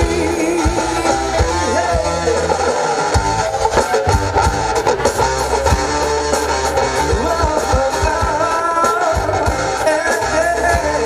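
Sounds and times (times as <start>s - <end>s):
bass: 0.0s - 11.0s
electric guitar: 0.0s - 11.0s
steady drum beat: 3.4s - 8.4s.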